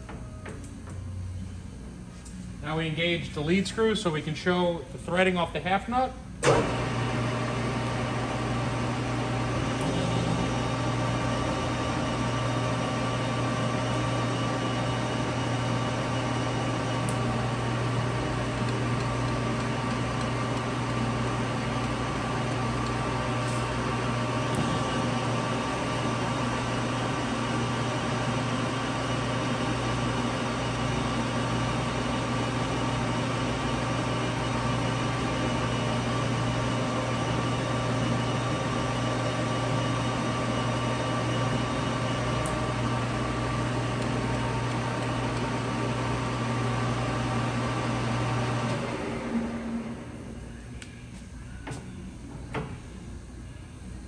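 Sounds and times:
lathe running with gear hum: 6.5 - 50.4.

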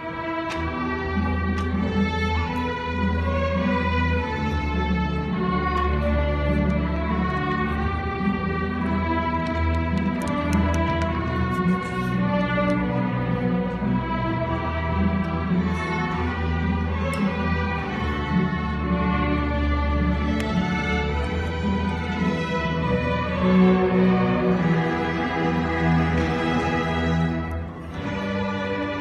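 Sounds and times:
orchestra strings playing: 0.0 - 29.0
faint clicks: 9.2 - 12.8.

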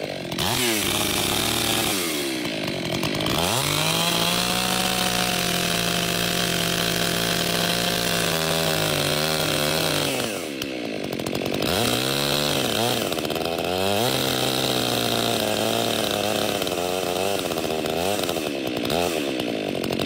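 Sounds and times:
chainsaw cutting tree: 0.0 - 20.0.

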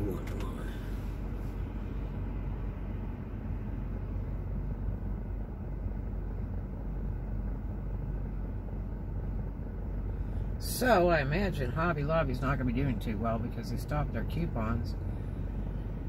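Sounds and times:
air-conditioning fan running: 0.0 - 16.0
car engine idling: 0.0 - 16.0.

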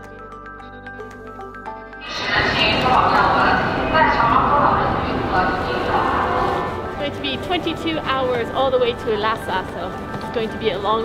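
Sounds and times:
echoing voices in railway station: 2.0 - 11.0.

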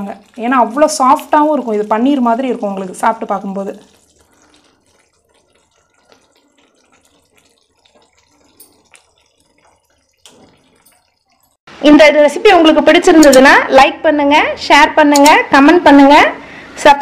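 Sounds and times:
thick gravy plopping: 0.0 - 11.7.

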